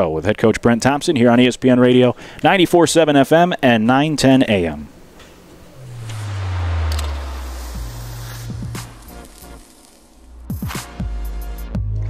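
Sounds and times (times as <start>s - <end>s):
fizzing hiss: 5.0s - 10.5s
low bass drone: 5.4s - 10.5s.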